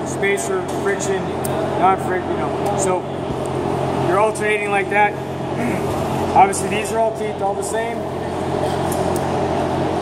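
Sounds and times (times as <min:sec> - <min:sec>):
workshop machinery drone: 0:00.0 - 0:10.0.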